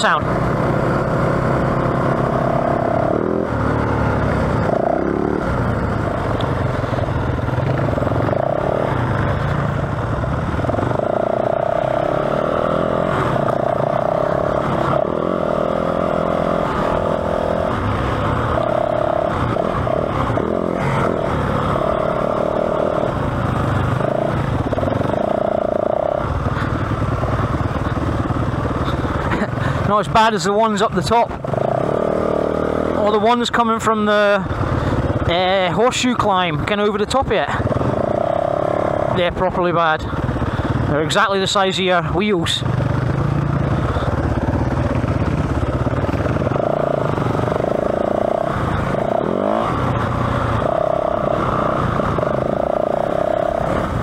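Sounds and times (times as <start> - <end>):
another dirt bike running: 0.0 - 54.0
dirt bike engine revving: 0.0 - 54.0.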